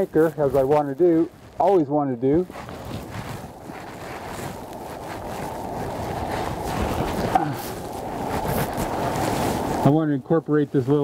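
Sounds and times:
clothing rustling: 0.0 - 10.0
wind buffeting microphone: 0.0 - 11.0.

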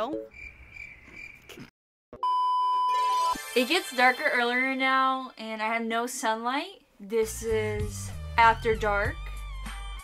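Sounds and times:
steady test tone beep: 2.2 - 3.4.

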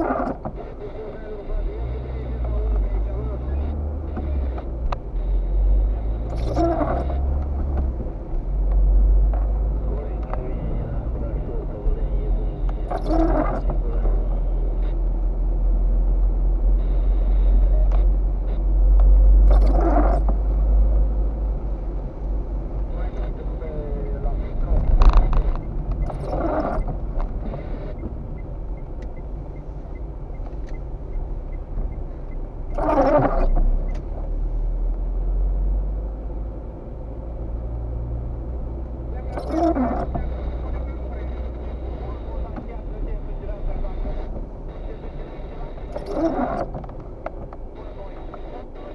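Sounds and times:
engine and tyre rumble: 0.0 - 48.9
windscreen wipers swishing: 0.0 - 48.9.

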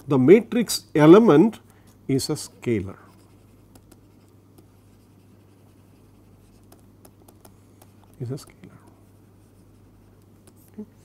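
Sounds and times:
steady low hum: 0.0 - 11.0
stylus scratching on tablet: 2.9 - 11.0.

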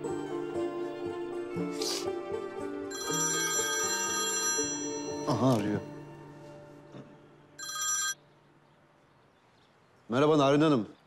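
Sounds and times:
background music: 0.0 - 9.4
phone ringtone: 2.9 - 6.0, 7.6 - 8.3.

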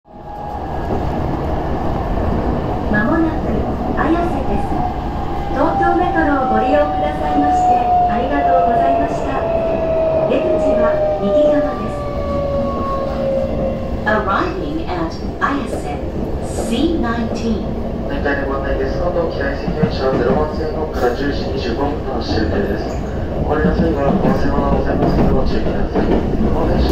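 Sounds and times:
train rumbling along rails: 0.1 - 26.9.

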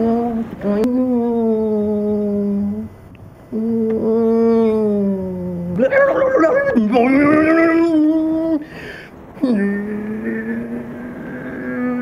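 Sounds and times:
man imitating car engine: 0.0 - 2.9, 3.5 - 12.0.

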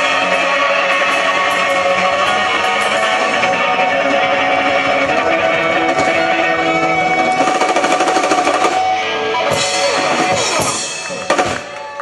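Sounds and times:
rapid drum roll: 0.0 - 11.9
rock band holding a chord: 0.0 - 12.0.

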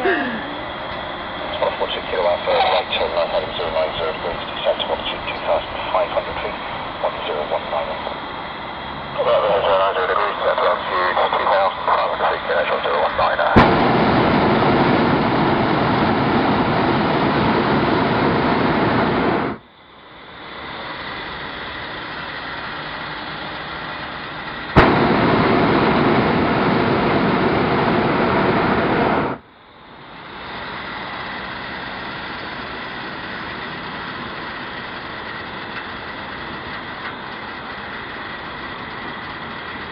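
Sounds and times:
quiet steady noise: 0.0 - 39.9
hot air balloon burner firing: 9.6 - 19.6, 24.0 - 29.5
burner click: 13.6 - 14.0, 24.8 - 25.7.

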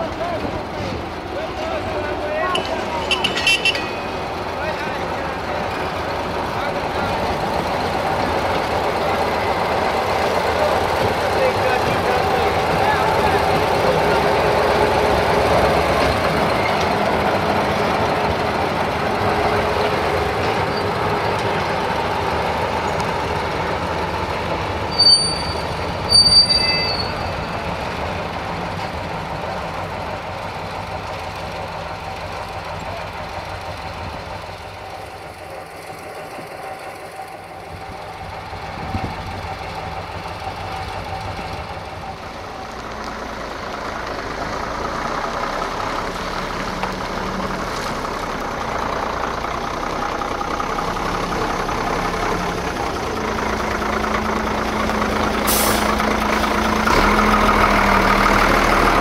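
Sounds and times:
brief high squeals: 24.9 - 27.4
vehicle engine running: 27.4 - 59.0.

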